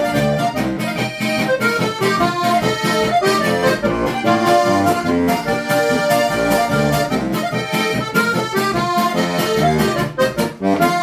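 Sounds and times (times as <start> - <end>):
button accordion folk melody: 0.0 - 11.0.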